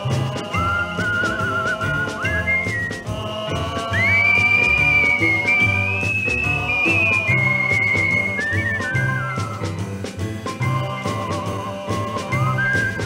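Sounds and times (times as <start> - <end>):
rockabilly ballad instrumental: 0.0 - 13.0.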